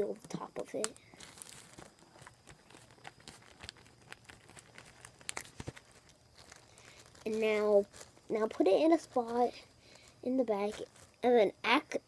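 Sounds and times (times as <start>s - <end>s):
plastic bag crinkling: 0.2s - 11.4s.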